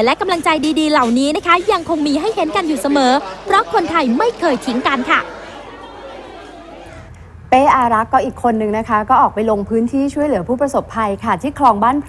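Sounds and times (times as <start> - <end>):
woman speaking: 0.0 - 5.4, 7.5 - 12.0
chatter of many people: 0.0 - 7.1.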